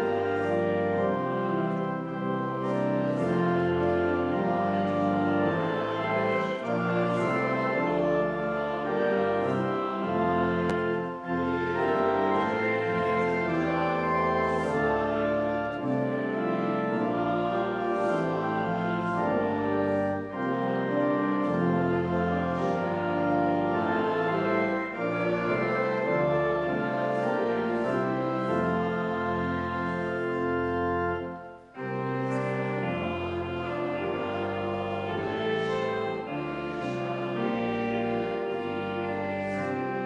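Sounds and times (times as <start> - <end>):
pipe organ playing a hymn: 0.0 - 40.0.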